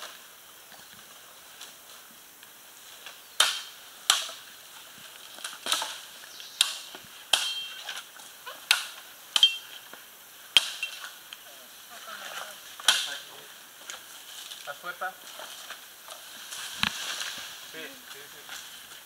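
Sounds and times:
chopping blows on bamboo: 3.4 - 4.4.

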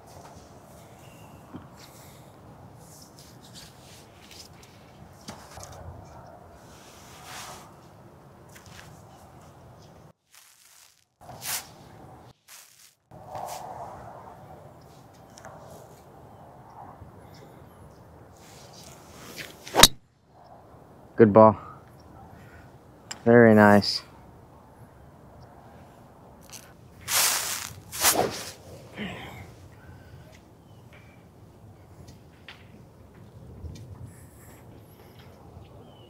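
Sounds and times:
low outdoor background: 0.0 - 36.0
faint shuffles: 26.4 - 28.6.

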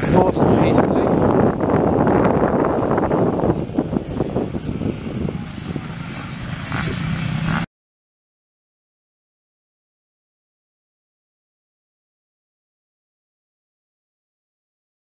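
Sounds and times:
wind buffeting microphone: 0.0 - 7.7.

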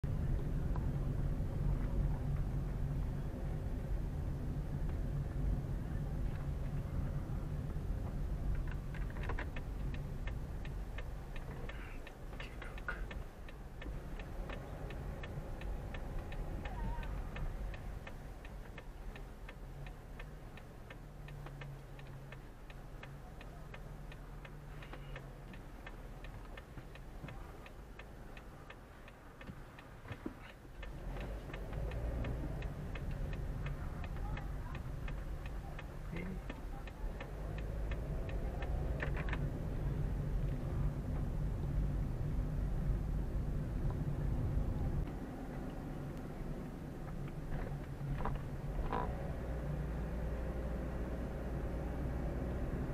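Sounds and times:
road rumble: 0.0 - 52.9
turn signal clicking: 0.1 - 52.9.

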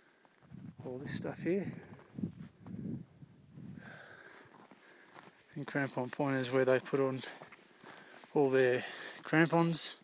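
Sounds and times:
person breathing hard: 3.7 - 5.4, 7.8 - 9.2.

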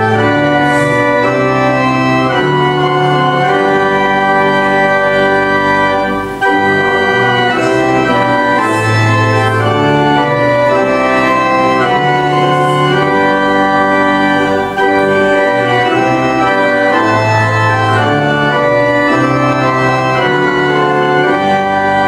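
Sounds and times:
church organ playing a hymn: 0.0 - 22.0.

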